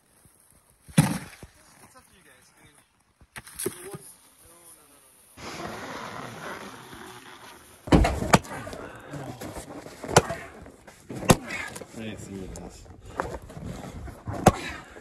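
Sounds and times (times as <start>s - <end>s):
axe splitting log: 7.9s - 8.8s, 10.0s - 11.8s, 14.3s - 14.8s.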